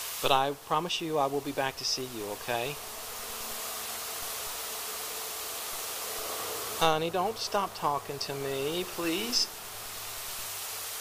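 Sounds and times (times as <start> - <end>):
high hiss: 0.0 - 11.0.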